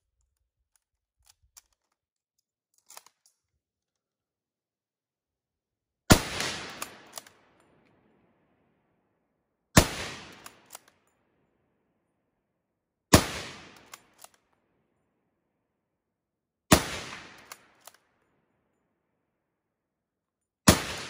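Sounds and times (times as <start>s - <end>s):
short sharp rifle bolt clicks: 2.7s - 3.5s, 6.7s - 7.6s, 10.3s - 11.2s, 13.7s - 14.6s, 17.4s - 18.1s
rifle shots: 6.1s - 7.6s, 9.8s - 10.8s, 13.1s - 14.1s, 16.7s - 17.8s, 20.7s - 21.0s.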